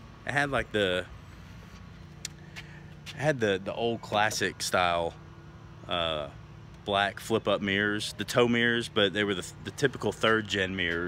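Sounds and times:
vehicle motor hum: 0.0 - 11.0.

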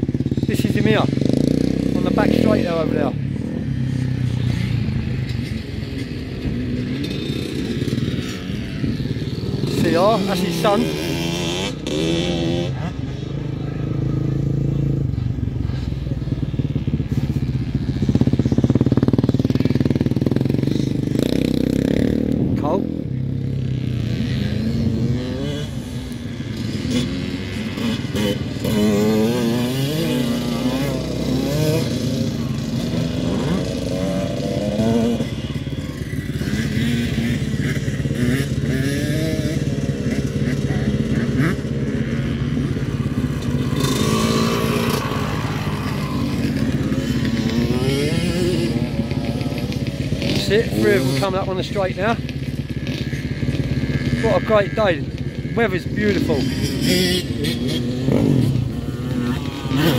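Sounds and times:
dirt bike engines revving: 0.0 - 59.9.

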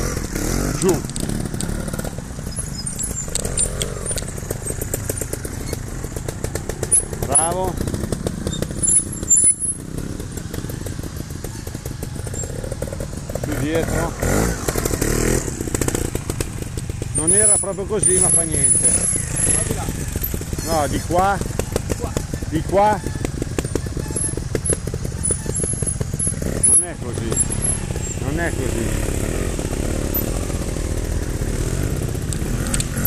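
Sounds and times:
motorcycle engine running: 0.0 - 33.0.

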